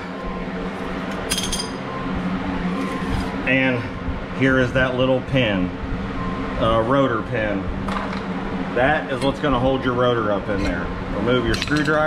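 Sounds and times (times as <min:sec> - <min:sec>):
metallic clink: 0:01.3 - 0:01.8.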